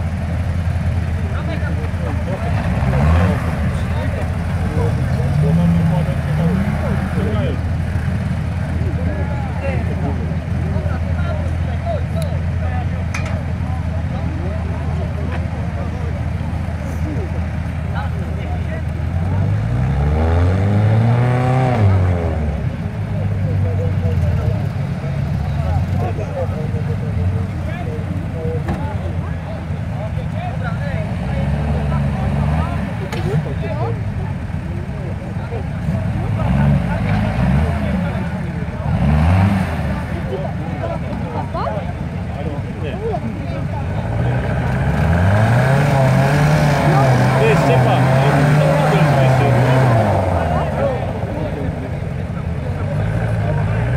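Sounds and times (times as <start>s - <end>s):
background voices: 0.0s - 53.9s
off-road engines revving: 0.0s - 53.9s.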